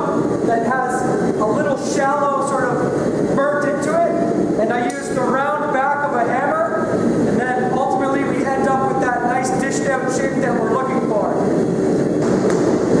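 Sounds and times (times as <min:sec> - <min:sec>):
person's voice: 0:00.0 - 0:02.8, 0:03.4 - 0:11.5.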